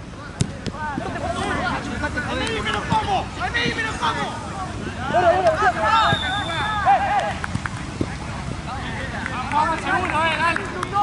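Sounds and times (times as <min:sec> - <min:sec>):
low background noise: 0:00.0 - 0:11.0
players calling out: 0:00.7 - 0:07.7.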